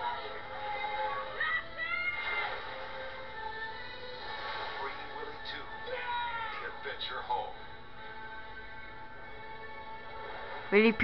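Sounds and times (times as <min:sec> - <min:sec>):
trailer music from tv speaker: 0:00.0 - 0:11.0.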